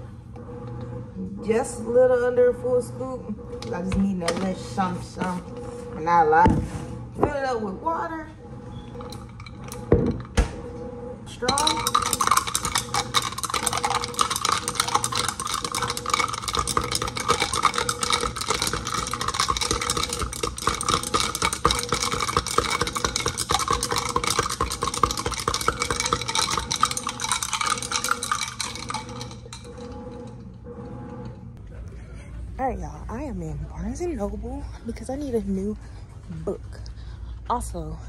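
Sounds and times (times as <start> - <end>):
straw clinking against glass: 11.5 - 29.8.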